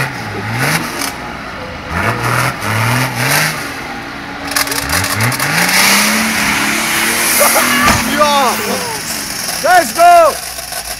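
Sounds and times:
diesel engine revving hard: 0:00.0 - 0:10.4.

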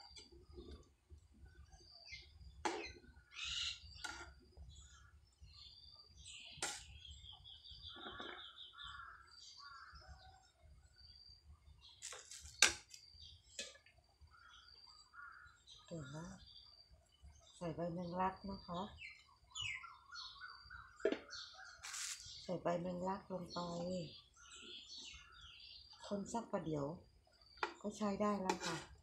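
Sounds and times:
small birds chirping: 0:00.0 - 0:29.0.

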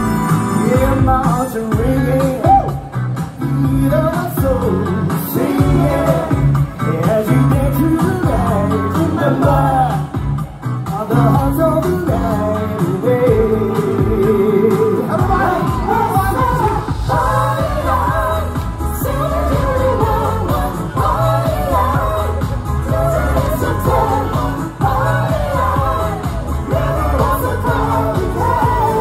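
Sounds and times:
steady bass beat: 0:00.0 - 0:29.0
vocal group singing pop music: 0:00.0 - 0:29.0.

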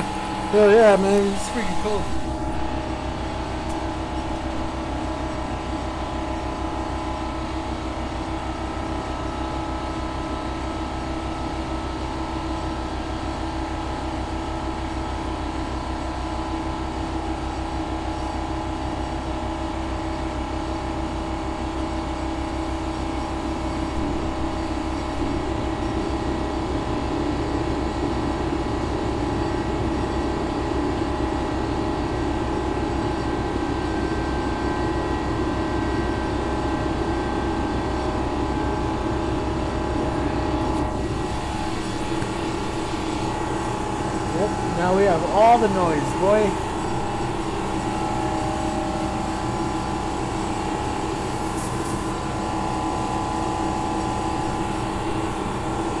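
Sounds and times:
machine drone: 0:00.0 - 0:10.2, 0:22.8 - 0:27.9, 0:32.3 - 0:56.0.

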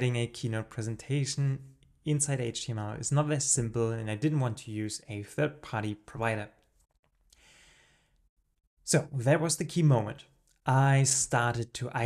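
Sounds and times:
man speaking: 0:00.0 - 0:06.6, 0:08.9 - 0:12.0
man breathing through mouth: 0:07.3 - 0:08.2.

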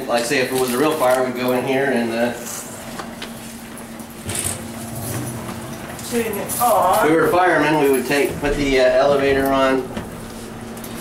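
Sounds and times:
low hum: 0:04.0 - 0:08.4
wheelchair rolling rumble: 0:04.2 - 0:09.6.

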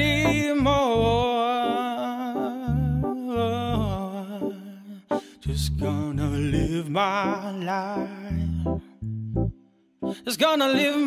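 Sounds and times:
low bass notes: 0:00.0 - 0:01.3, 0:02.7 - 0:04.0, 0:05.5 - 0:06.8, 0:08.3 - 0:09.6
electric keyboard chords: 0:00.0 - 0:11.0.

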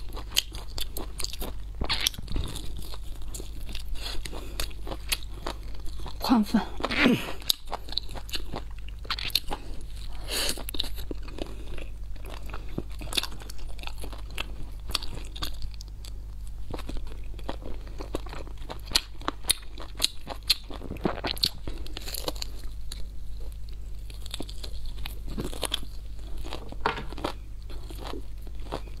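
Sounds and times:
steady low hum: 0:00.0 - 0:29.0
wet chewing: 0:00.0 - 0:29.0.

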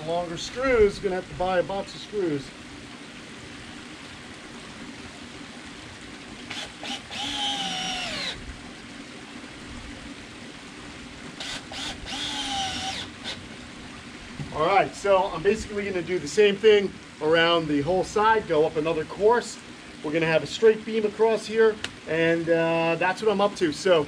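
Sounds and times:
power drill driving screws: 0:06.5 - 0:08.4, 0:11.4 - 0:13.4.

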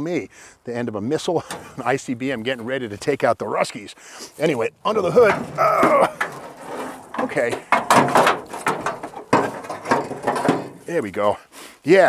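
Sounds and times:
car hood metal scraping and clanking: 0:01.4 - 0:01.8, 0:04.9 - 0:11.0.

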